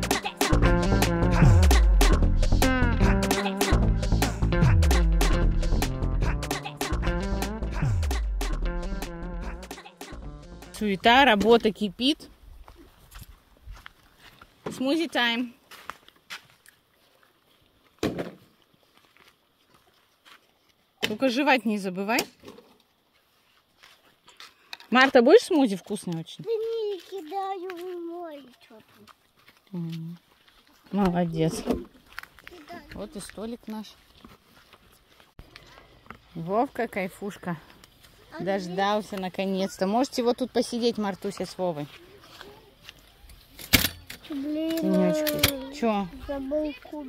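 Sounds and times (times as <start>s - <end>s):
woman speaking: 10.7s - 12.3s, 14.7s - 15.6s, 21.1s - 22.3s, 24.9s - 26.4s, 30.9s - 31.8s, 36.3s - 37.7s, 44.8s - 46.2s
rustle: 11.9s - 47.0s.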